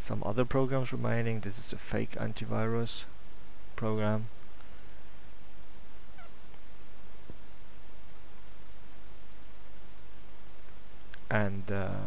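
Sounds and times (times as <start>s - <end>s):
low mains hum: 0.0s - 12.0s
steady hiss: 0.0s - 12.0s
faint pitched call: 6.0s - 6.5s.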